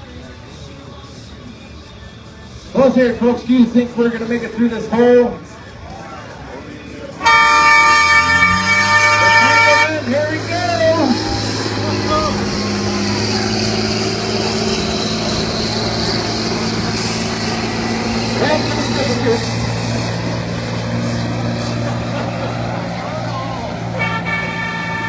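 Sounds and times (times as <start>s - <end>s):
bus engine running: 0.0s - 25.0s
air horn blast: 7.2s - 11.0s, 23.9s - 25.0s
passengers shouting: 7.2s - 14.2s, 22.2s - 25.0s.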